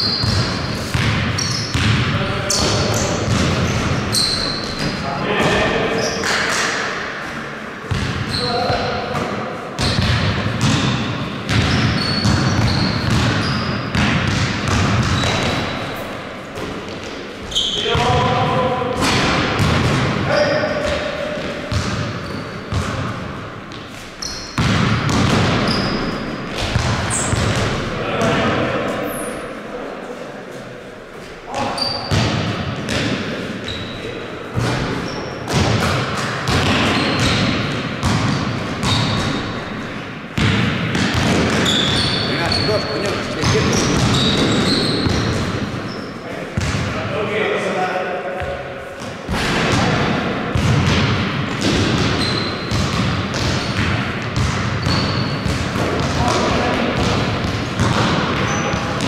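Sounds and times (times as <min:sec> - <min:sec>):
sneaker squeaks: 0:00.0 - 0:18.2, 0:20.3 - 0:27.9, 0:28.8 - 0:29.6, 0:31.2 - 0:46.8, 0:51.5 - 0:59.0
basketball bouncing on hard floor: 0:00.2 - 0:03.9, 0:07.9 - 0:08.2, 0:09.2 - 0:15.6, 0:19.0 - 0:20.1, 0:21.7 - 0:23.1, 0:23.7 - 0:28.4, 0:32.1 - 0:33.2, 0:34.6 - 0:39.5, 0:40.4 - 0:45.6, 0:46.6 - 0:46.9, 0:49.3 - 0:59.0.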